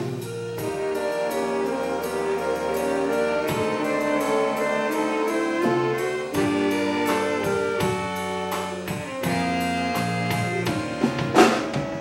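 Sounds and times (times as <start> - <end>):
rhythm section beat: 0.0 - 12.0
saxophones and trombones chords: 0.0 - 12.0.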